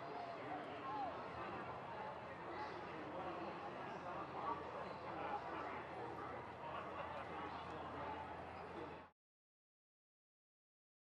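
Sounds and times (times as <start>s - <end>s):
background murmur: 0.0s - 9.1s.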